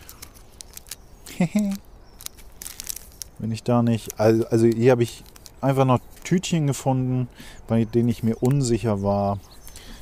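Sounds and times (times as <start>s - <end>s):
paper packets rustling: 0.0s - 6.6s.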